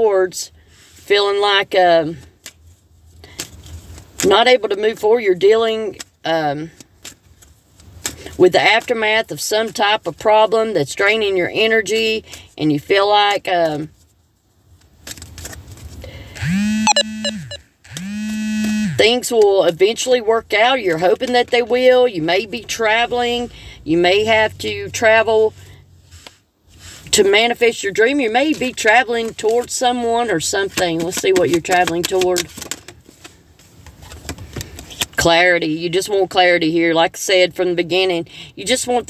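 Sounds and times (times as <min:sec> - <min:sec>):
cards clicking and tapping: 0:30.6 - 0:33.3.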